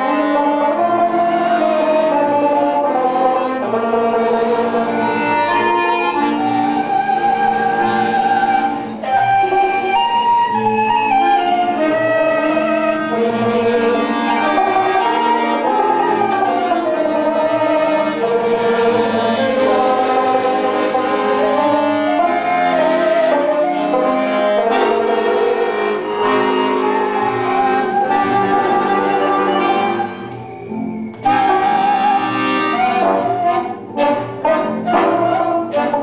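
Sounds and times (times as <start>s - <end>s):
folk band playing: 0.0s - 36.0s.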